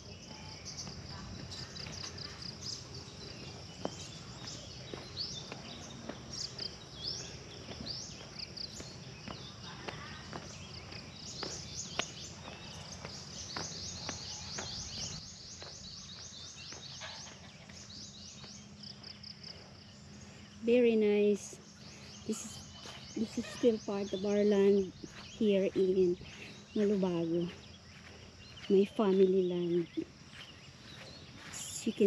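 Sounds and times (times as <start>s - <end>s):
birds chirping: 0.0s - 32.0s
insects chirping: 0.0s - 32.0s.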